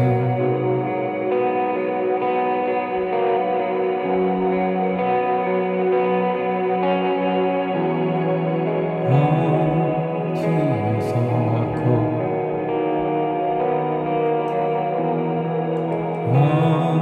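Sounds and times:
echoing electric guitar chords: 0:00.0 - 0:17.0.

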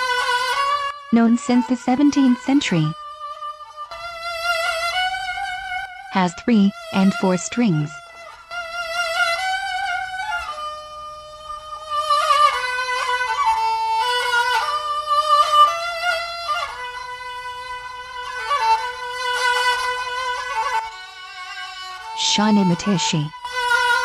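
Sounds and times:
bowed spike fiddle melody: 0:00.0 - 0:24.0.

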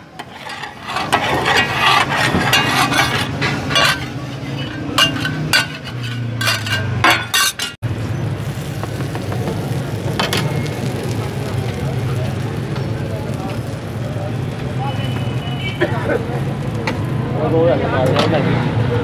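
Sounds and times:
oil sizzling: 0:00.0 - 0:17.6
metal spatula clinking on griddle: 0:00.2 - 0:07.8.

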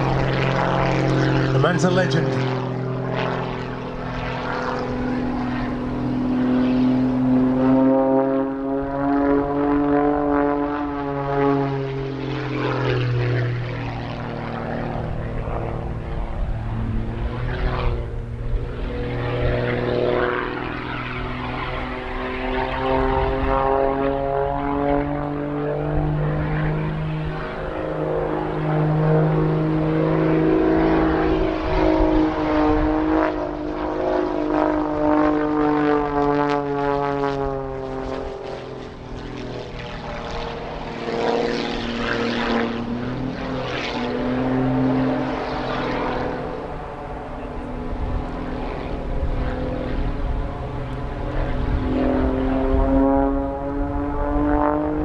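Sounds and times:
propeller plane engine droning: 0:00.0 - 0:55.0.

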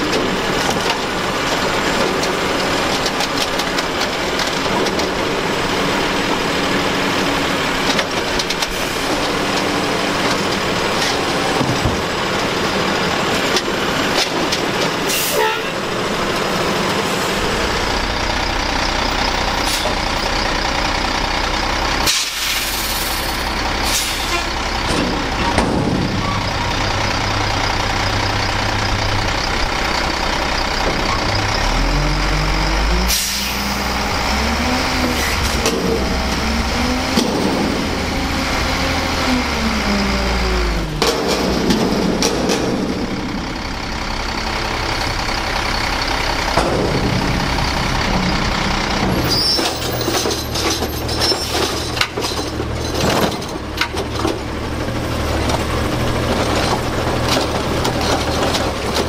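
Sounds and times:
garbage truck engine revving: 0:00.0 - 0:59.0
sharp metallic bangs: 0:41.0 - 0:52.0.

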